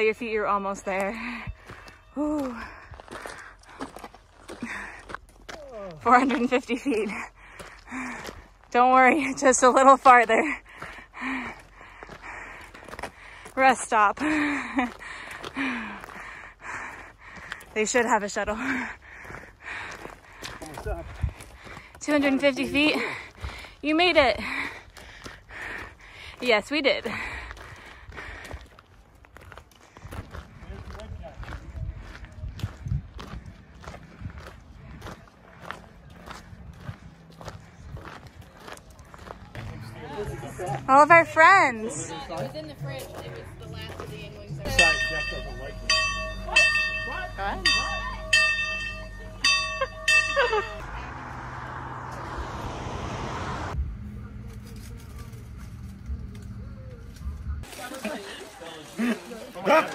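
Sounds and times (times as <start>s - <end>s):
footsteps crunching on gravel: 0.7s - 49.8s
voices: 22.0s - 24.7s, 39.0s - 52.4s
ringing bell chimes: 44.7s - 50.9s.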